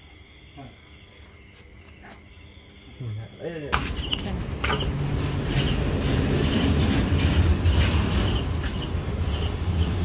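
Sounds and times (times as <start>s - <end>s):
vehicle rumbling: 3.9s - 10.0s.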